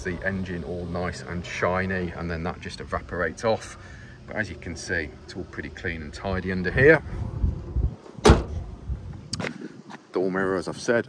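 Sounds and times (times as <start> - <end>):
low rumbling: 0.0 - 9.4
van bonnet shutting bang: 8.2 - 8.7.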